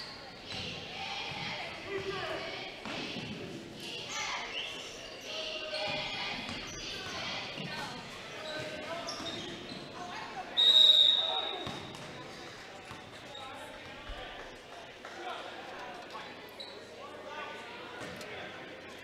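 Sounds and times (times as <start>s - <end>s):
crowd voices: 0.0s - 19.0s
referee's whistle blast: 10.6s - 11.9s.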